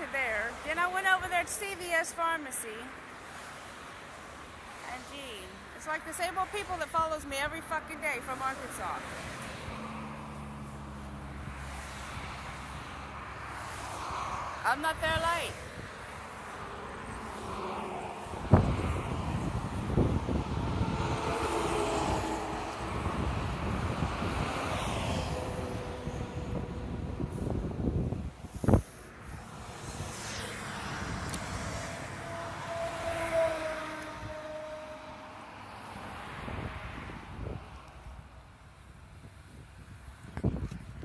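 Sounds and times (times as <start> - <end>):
road traffic passing: 0.0 - 41.0
wind buffeting microphone: 14.9 - 32.4, 36.2 - 41.0.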